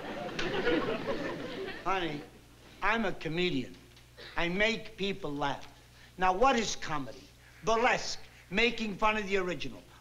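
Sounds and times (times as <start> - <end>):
studio audience laughing: 0.0 - 1.9
man speaking: 1.8 - 3.8, 4.4 - 10.0.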